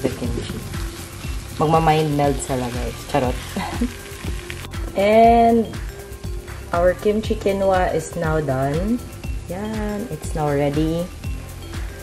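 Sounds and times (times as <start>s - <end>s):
food sizzling in a frying pan: 0.0s - 12.0s.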